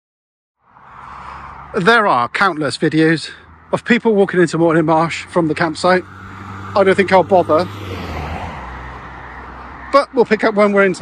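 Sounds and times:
car passing by: 0:00.6 - 0:02.1, 0:04.8 - 0:11.0.

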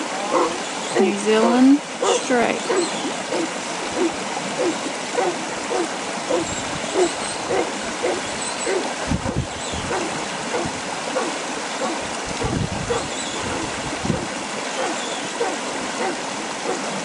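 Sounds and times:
dog barking: 0:00.3 - 0:01.1, 0:02.0 - 0:08.9, 0:09.9 - 0:12.0, 0:14.8 - 0:16.9
wind noise on microphone: 0:03.3 - 0:14.9.

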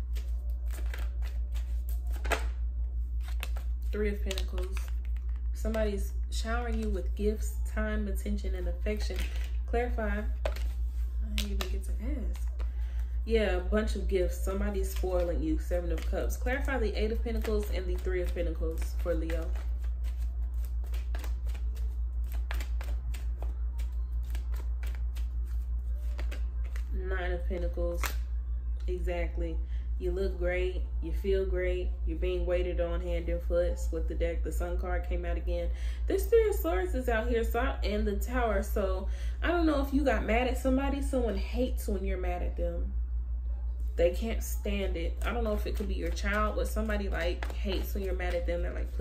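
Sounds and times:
cards flicking and clicking: 0:00.0 - 0:02.6, 0:03.2 - 0:05.8, 0:14.8 - 0:27.0, 0:27.9 - 0:28.3
low hum: 0:00.0 - 0:49.0.

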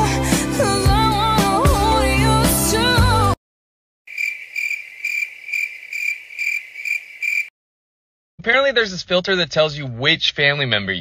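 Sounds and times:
cricket chirping: 0:04.1 - 0:07.5.

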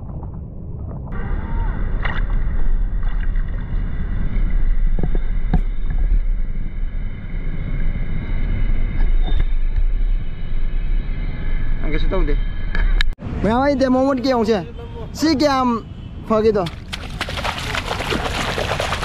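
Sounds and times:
faint high whine: 0:01.2 - 0:16.4
wind buffeting microphone: 0:15.8 - 0:19.0.

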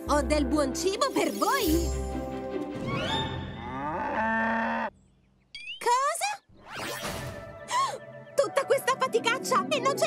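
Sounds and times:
cartoon cows mooing: 0:03.5 - 0:05.0.

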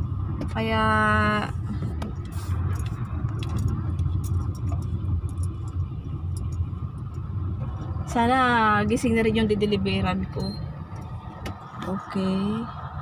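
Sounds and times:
car interior rumble: 0:00.0 - 0:13.0.

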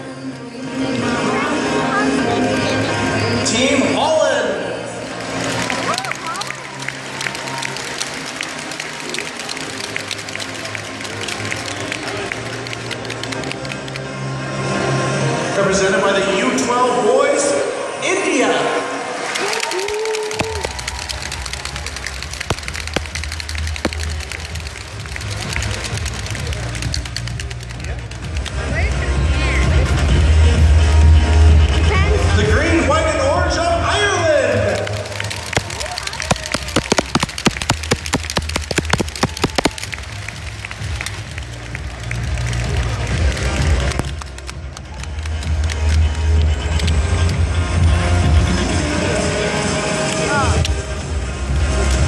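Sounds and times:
applause: 0:05.1 - 0:14.0, 0:19.2 - 0:29.1, 0:34.6 - 0:47.0
hand clapping: 0:05.2 - 0:14.0, 0:19.2 - 0:29.0, 0:34.7 - 0:47.0
bass-heavy music through speaker: 0:20.6 - 0:52.0.

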